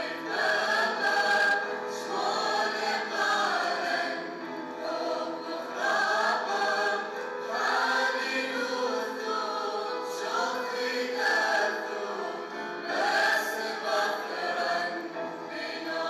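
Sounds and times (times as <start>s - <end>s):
mixed choir singing: 0.0s - 16.0s.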